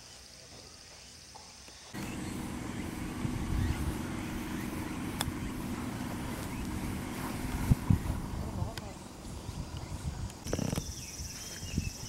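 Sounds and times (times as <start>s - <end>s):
steady low rumble: 2.0s - 10.4s.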